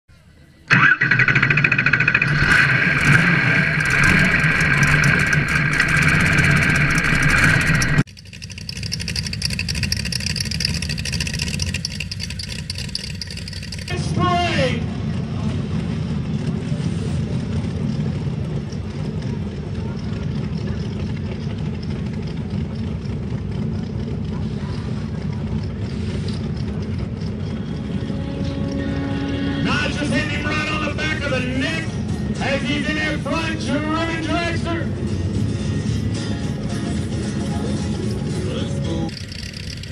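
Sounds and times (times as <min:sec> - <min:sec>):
loud steady intro sound: 0:00.2 - 0:08.1
engine revving up: 0:00.7 - 0:13.9
dragster engine idling: 0:00.7 - 0:39.9.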